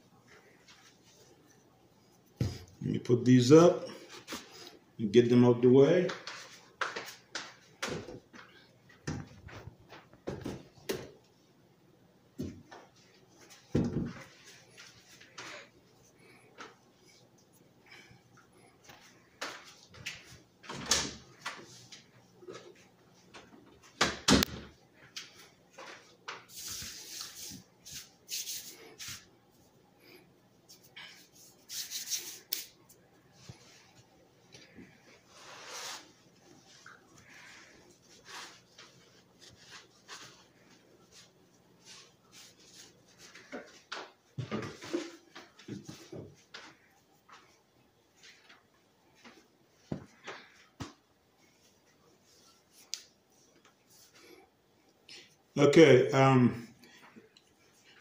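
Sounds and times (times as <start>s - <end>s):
cloth wiping a counter: 25.4s - 29.7s, 30.6s - 43.9s, 49.2s - 54.4s.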